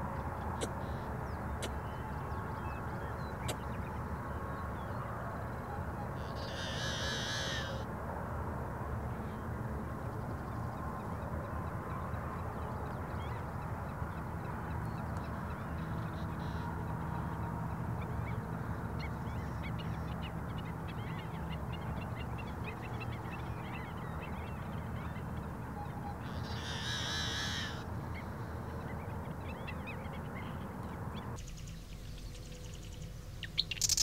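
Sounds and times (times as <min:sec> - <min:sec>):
birds calling: 0:06.0 - 0:07.8, 0:18.2 - 0:30.6, 0:31.2 - 0:34.0
blackbird harsh buzzing song: 0:06.2 - 0:07.8, 0:26.2 - 0:28.4, 0:31.3 - 0:34.0
steady low background rush: 0:27.6 - 0:33.9.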